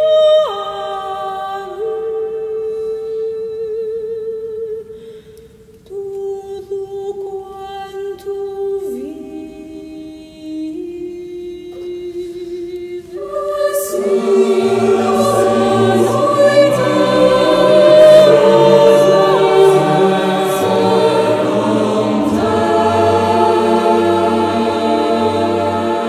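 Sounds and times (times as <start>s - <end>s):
mixed choir singing: 0.0s - 2.9s, 11.7s - 26.0s
woman singing long notes: 5.9s - 23.2s.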